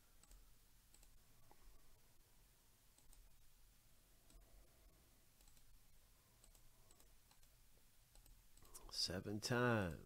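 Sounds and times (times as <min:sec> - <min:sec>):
mouse and keyboard clicks: 0:05.4 - 0:05.7, 0:06.4 - 0:08.8.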